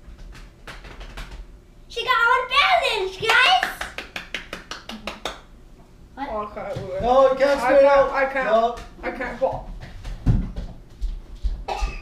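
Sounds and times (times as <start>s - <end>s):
woman coughing: 11.7s - 12.0s.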